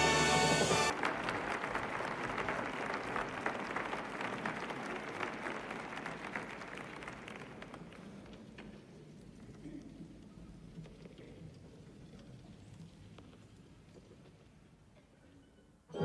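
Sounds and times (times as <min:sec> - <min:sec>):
orchestral music with brass chords: 0:00.0 - 0:00.9
audience applause: 0:00.0 - 0:08.8.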